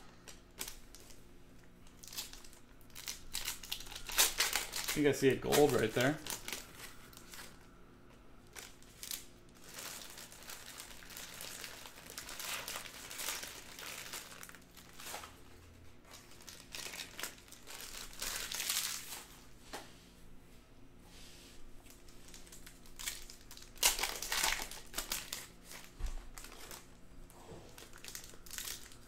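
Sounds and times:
foil wrapper crinkling: 0.1 - 7.6, 8.4 - 15.4, 16.0 - 19.4, 21.9 - 27.0, 27.7 - 29.0.

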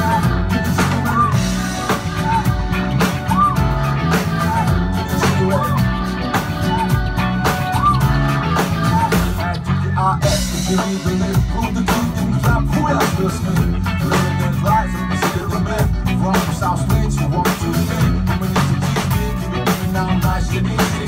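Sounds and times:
live funk band playing: 0.0 - 21.0.

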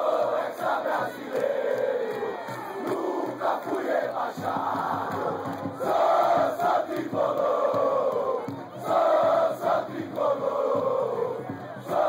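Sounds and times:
stadium crowd chanting: 0.0 - 12.0.

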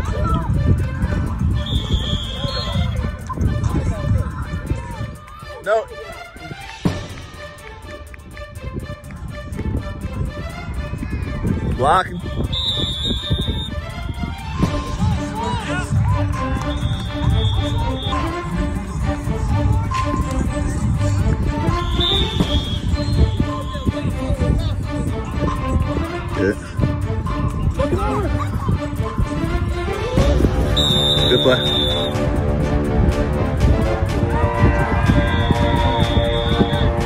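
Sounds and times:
music: 0.0 - 37.0
referee's whistle: 1.6 - 3.0, 12.2 - 13.8, 16.6 - 18.3, 21.7 - 24.1, 30.7 - 32.2, 35.1 - 37.0.

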